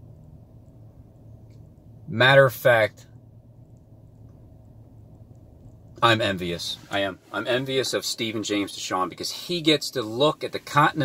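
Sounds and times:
faint low car cabin hum: 0:00.0 - 0:11.0.

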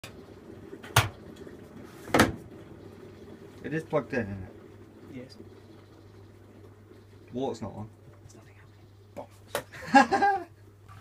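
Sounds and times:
washing machine control knock: 0:00.9 - 0:01.2, 0:02.1 - 0:02.5.

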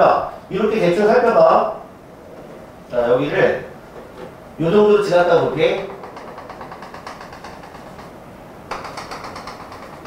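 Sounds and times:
chalk tapping on chalkboard: 0:05.8 - 0:10.0.

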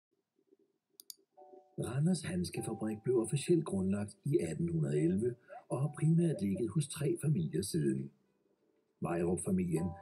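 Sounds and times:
person speaking: 0:01.8 - 0:08.2, 0:09.0 - 0:10.0.

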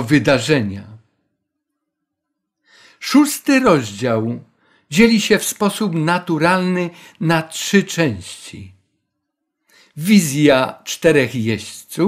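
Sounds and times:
faint in-breath: 0:02.6 - 0:03.0, 0:04.5 - 0:04.9, 0:09.6 - 0:10.0.

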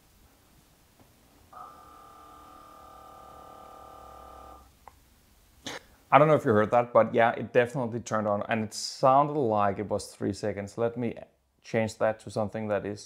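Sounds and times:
water pump humming: 0:01.5 - 0:04.7.

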